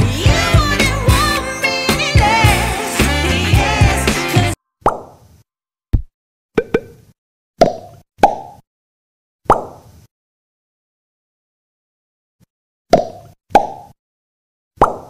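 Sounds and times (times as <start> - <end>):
pop music with singing: 0.0 - 4.6.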